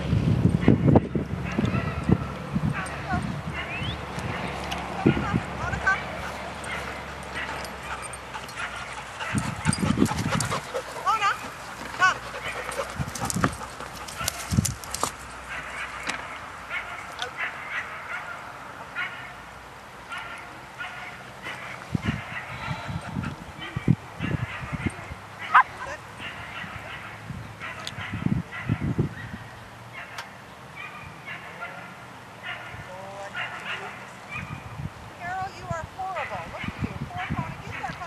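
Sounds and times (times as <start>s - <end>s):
puppies yipping and barking: 1.4s - 18.3s, 20.1s - 31.8s.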